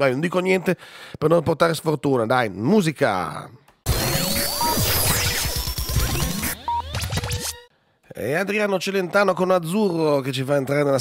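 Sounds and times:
electronic jingle music: 3.9s - 7.7s.

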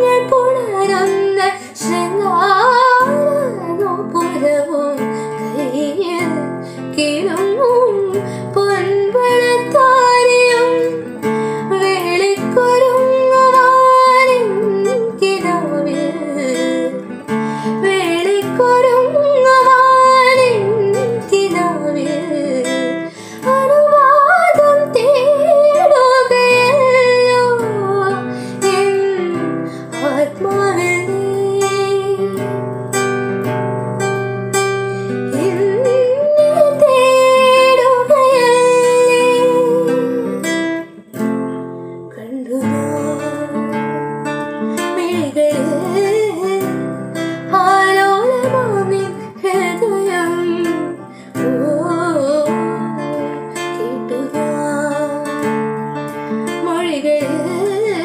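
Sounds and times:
strummed classical guitar: 0.0s - 58.0s
woman singing: 0.0s - 58.0s.

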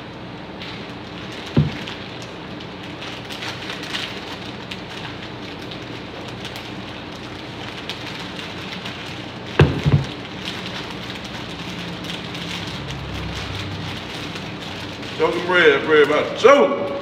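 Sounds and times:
dull low thump: 9.6s - 10.2s.

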